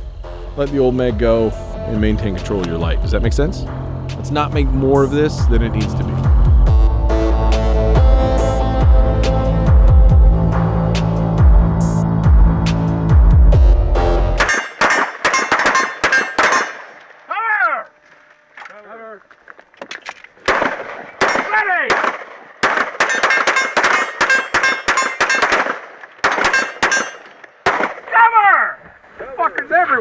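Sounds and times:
music: 0.0 - 14.7
loud sharp knocks and clanks: 14.4 - 17.0.

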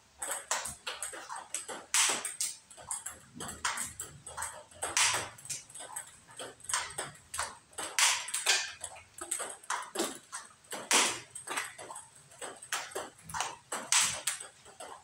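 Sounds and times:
table tennis balls clicking: 0.0 - 15.0.

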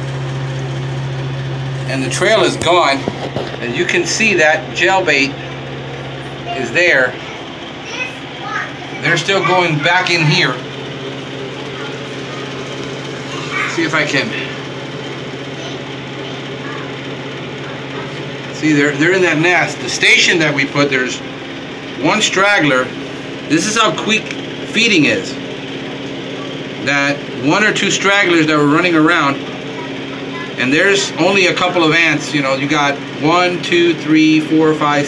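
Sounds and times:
low machine hum: 0.0 - 35.0.

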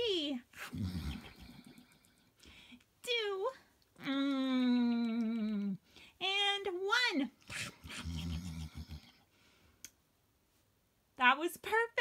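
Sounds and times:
person making growly eating noises: 0.6 - 2.2, 7.5 - 9.2.

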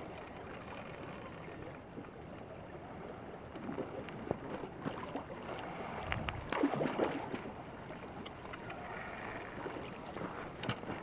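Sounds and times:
water splashing: 3.6 - 8.2.

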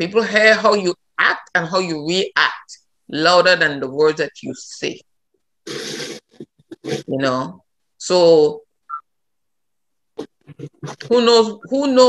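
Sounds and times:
person exhaling or grunting: 5.7 - 7.1
person saying yeah: 5.7 - 7.2, 10.2 - 11.3.

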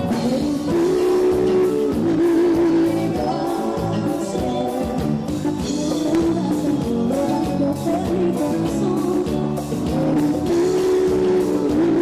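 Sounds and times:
bass: 0.0 - 12.0
drums: 0.0 - 12.0.

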